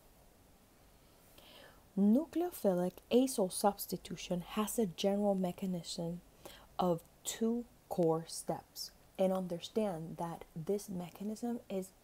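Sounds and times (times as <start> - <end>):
faint breath drawn in: 0.9 - 1.9.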